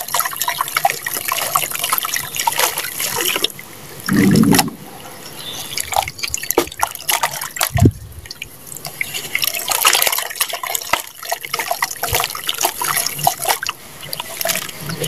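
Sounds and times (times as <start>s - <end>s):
muddy water splashing: 0.0s - 15.0s.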